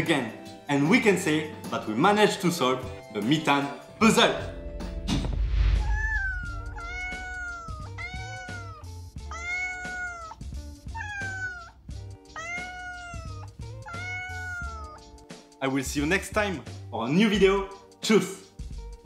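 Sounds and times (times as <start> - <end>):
music with bass beat: 4.5 - 9.4, 18.5 - 19.0
short whoosh: 4.8 - 6.8
cat meowing: 5.8 - 15.0.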